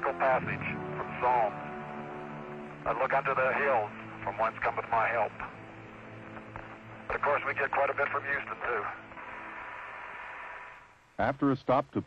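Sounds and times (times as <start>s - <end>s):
radio channel hiss: 0.0s - 12.0s.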